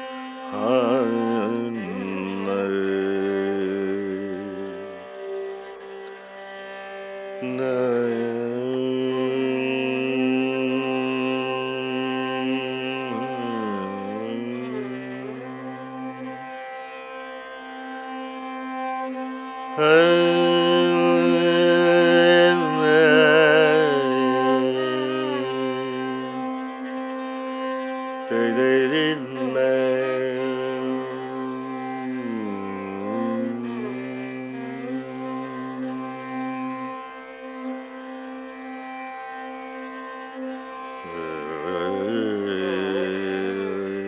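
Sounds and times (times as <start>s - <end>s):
indian classical melody: 0.0s - 44.0s.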